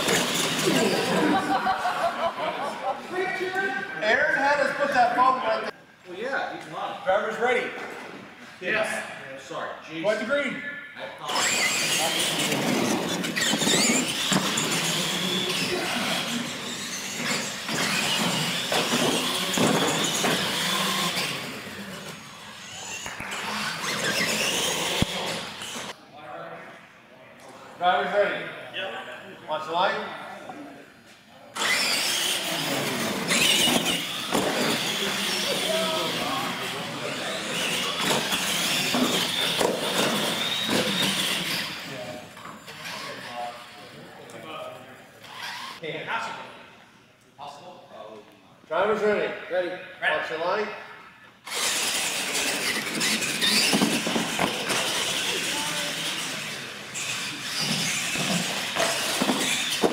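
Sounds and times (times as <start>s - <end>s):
toy truck motors whining: 0.0s - 2.0s, 11.2s - 26.0s, 31.6s - 44.4s, 45.0s - 45.8s, 51.4s - 59.9s
voices in a large hall: 0.0s - 59.9s.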